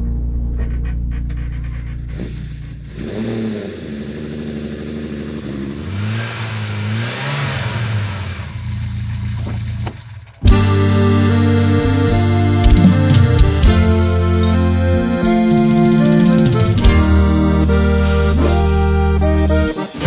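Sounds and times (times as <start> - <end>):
sports car engine revving: 0.0 - 20.0.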